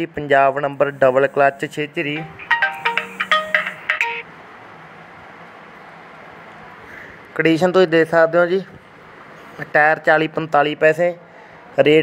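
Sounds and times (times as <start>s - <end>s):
electronic ringtone melody: 2.2s - 4.3s.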